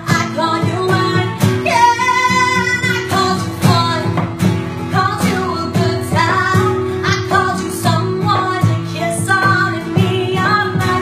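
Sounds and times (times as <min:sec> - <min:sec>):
guitar accompaniment: 0:00.0 - 0:11.0
woman singing country song: 0:00.0 - 0:11.0.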